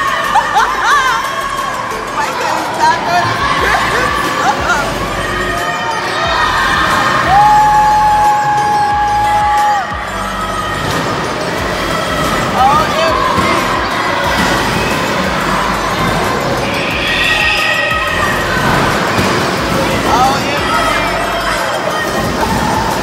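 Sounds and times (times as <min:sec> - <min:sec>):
loud music: 0:00.0 - 0:23.0
riders' voices and calls: 0:00.0 - 0:23.0.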